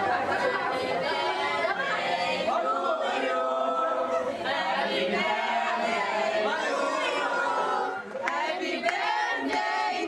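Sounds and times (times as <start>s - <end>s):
group singing birthday song: 0.0s - 10.0s.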